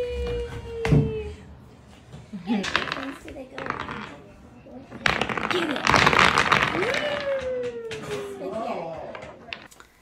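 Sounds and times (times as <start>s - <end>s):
wooden stones clattering on floor: 2.5s - 4.3s, 4.9s - 9.8s.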